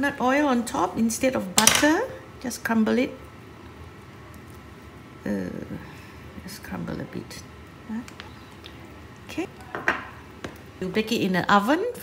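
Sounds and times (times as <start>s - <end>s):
woman speaking: 5.2s - 8.2s, 9.3s - 9.9s, 10.8s - 12.0s.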